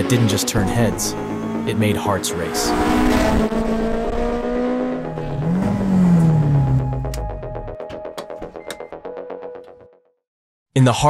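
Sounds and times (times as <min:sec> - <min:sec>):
car engine driving by: 0:00.0 - 0:07.3.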